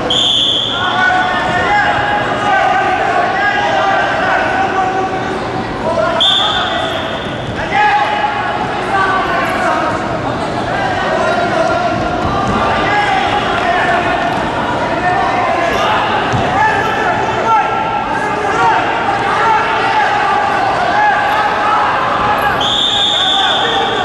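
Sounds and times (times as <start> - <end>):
referee's whistle blast: 0.0 - 0.8, 6.2 - 7.3, 22.6 - 24.0
indistinct voices echoing: 0.0 - 24.0.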